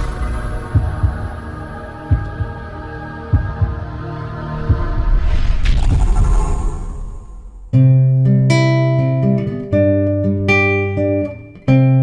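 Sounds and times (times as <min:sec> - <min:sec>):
deep heartbeat-like thumps: 0:00.0 - 0:07.8
sustained drone: 0:00.0 - 0:07.8.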